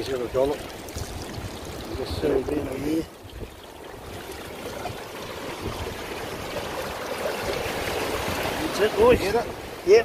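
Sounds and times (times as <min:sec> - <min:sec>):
water trickling off a net: 0:00.0 - 0:08.8.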